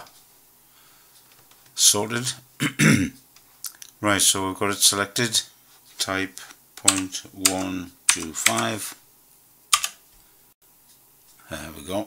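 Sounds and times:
faint room hiss: 0:00.0 - 0:12.0
keyboard key clack: 0:06.8 - 0:08.7.

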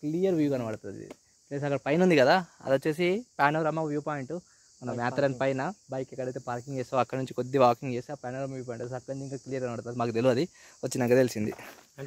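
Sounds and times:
man talking: 0:00.0 - 0:11.8
high-pitched insect chorus: 0:00.0 - 0:12.0.

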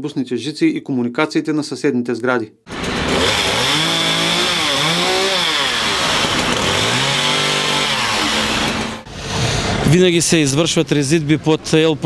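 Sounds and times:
chainsaw cutting branches: 0:02.7 - 0:09.1.

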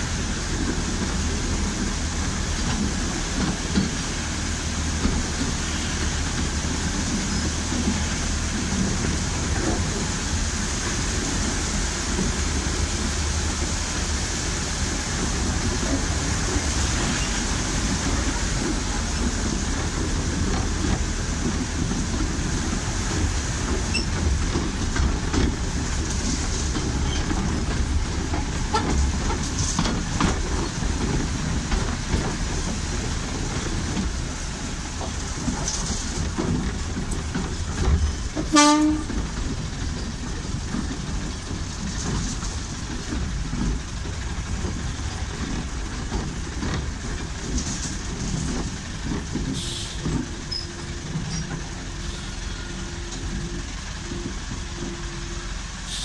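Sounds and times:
train carriage rumbling and rattling: 0:00.0 - 0:56.0
train horn toot: 0:38.5 - 0:39.2, 0:49.6 - 0:50.1.

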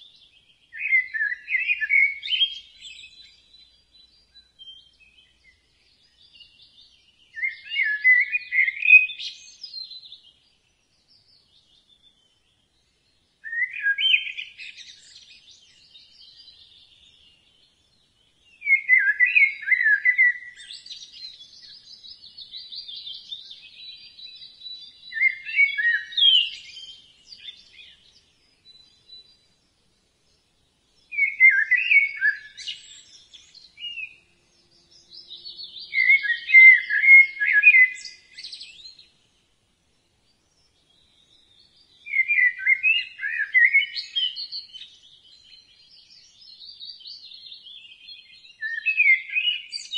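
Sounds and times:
faint high bird chirps: 0:00.0 - 0:39.5, 0:40.2 - 0:49.9
birds singing chirping song: 0:00.0 - 0:49.9.

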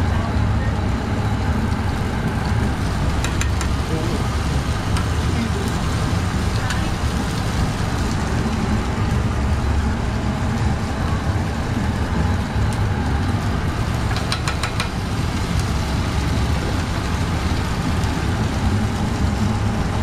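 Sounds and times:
machinery engine rumble: 0:00.0 - 0:20.0.

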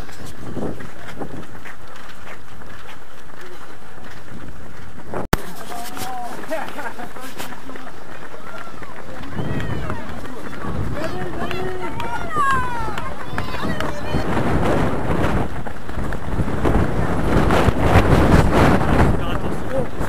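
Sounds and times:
wind rush on microphone: 0:00.0 - 0:02.8, 0:03.8 - 0:06.7, 0:07.3 - 0:20.0
runners' footfalls: 0:00.0 - 0:20.0
voices calling out: 0:05.4 - 0:17.2.

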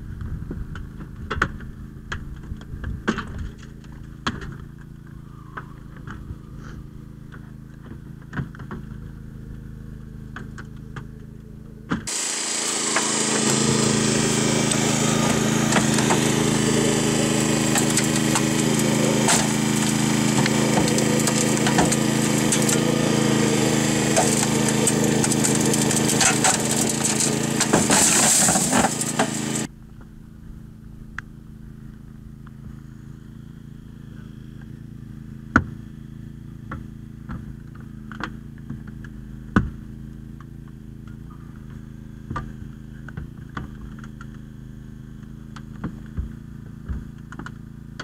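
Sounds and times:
hydraulic power unit running: 0:03.8 - 0:48.0.

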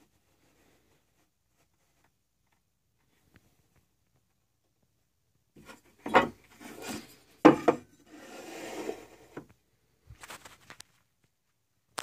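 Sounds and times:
metal scraping on tabletop: 0:06.1 - 0:09.5
metal sliding along surface: 0:06.6 - 0:09.4.

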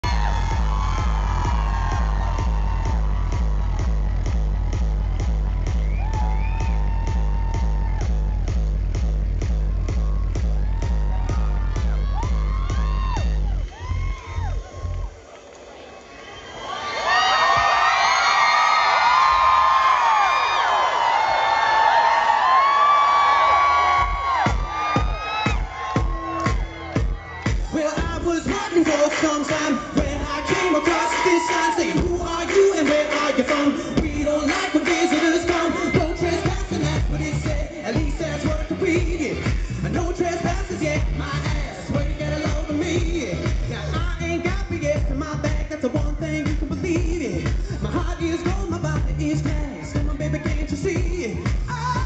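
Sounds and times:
dance music with heavy bass beat: 0:00.0 - 0:15.2, 0:23.6 - 0:52.0
crowd screaming and cheering: 0:00.0 - 0:52.0.

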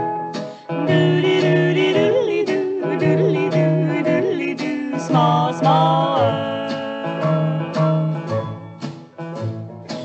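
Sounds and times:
country string band record: 0:00.0 - 0:10.0.

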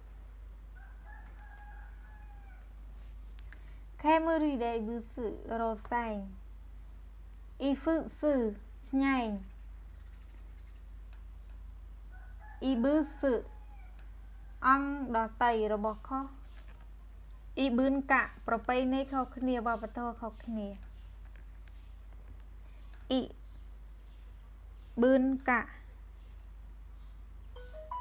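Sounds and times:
faint drawn-out tone: 0:27.5 - 0:28.0.

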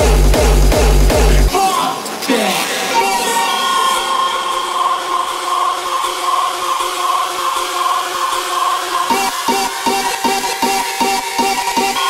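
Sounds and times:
sustained noisy synthesizer chords: 0:00.0 - 0:12.0.

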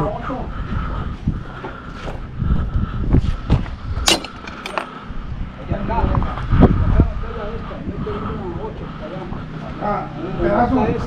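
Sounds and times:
sharp metallic clink: 0:04.0 - 0:04.9.

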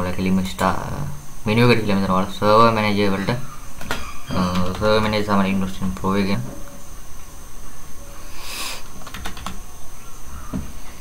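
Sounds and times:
computer keyboard clicks: 0:09.0 - 0:09.6.

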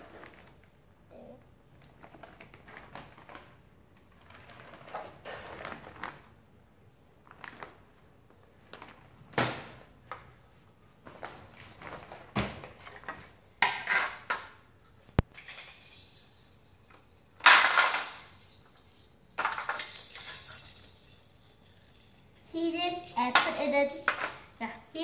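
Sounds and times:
plastic toy pieces clattering: 0:12.9 - 0:24.6.

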